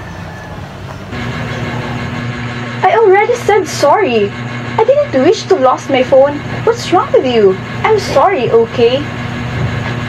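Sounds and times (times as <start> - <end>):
low mechanical hum: 0.0 - 10.0
steady high tone: 0.0 - 10.0.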